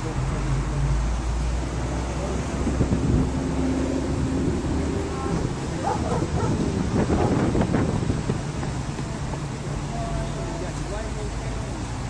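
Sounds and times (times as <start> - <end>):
road traffic rumble: 0.0 - 12.0
wind buffeting microphone: 2.5 - 9.7.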